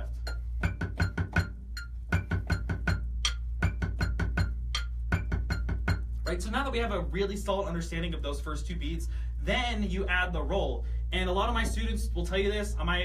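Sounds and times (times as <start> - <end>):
drumsticks tapping practice pad: 0.0 - 6.3.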